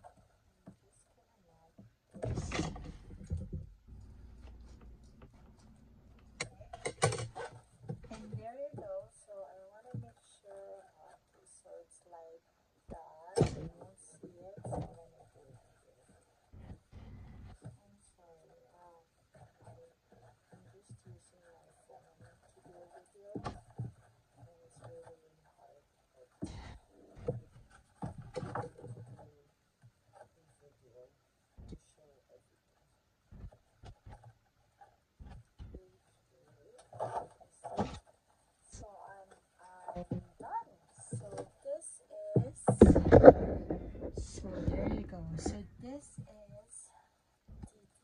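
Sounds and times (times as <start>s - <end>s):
person speaking indistinctly: 0.0s - 3.6s, 6.3s - 23.6s, 24.4s - 27.4s, 28.3s - 29.5s, 30.2s - 32.6s, 35.6s - 38.0s, 38.6s - 48.0s.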